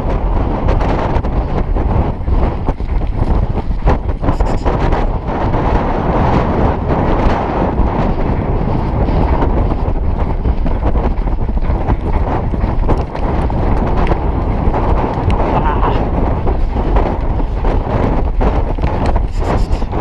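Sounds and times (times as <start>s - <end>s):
galloping hooves on turf: 0.0s - 20.0s
wind buffeting microphone: 0.0s - 20.0s.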